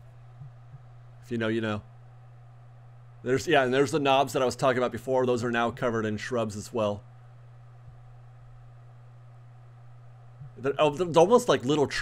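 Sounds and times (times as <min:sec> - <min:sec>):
faint low hum with hiss: 0:00.0 - 0:12.0.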